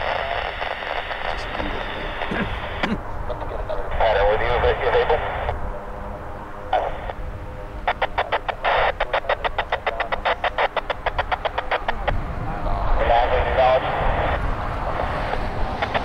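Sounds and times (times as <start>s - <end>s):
voice over radio: 0.0s - 5.9s, 6.7s - 7.2s, 7.8s - 14.4s, 15.0s - 16.0s.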